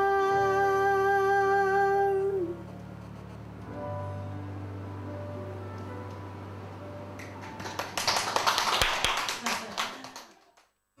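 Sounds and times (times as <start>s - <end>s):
applause: 7.2s - 10.8s.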